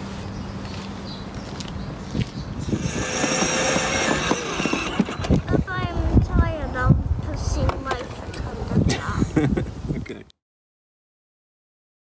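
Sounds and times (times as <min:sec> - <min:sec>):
toy car electric motor whining: 0:02.6 - 0:05.6.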